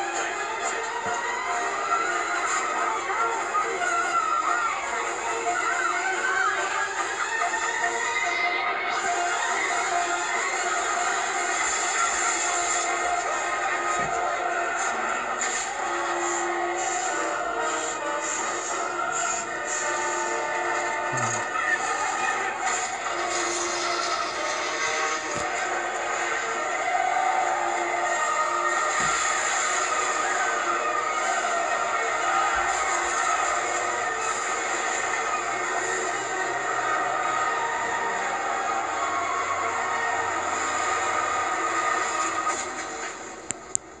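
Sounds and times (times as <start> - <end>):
film soundtrack from television: 0.0 - 44.0.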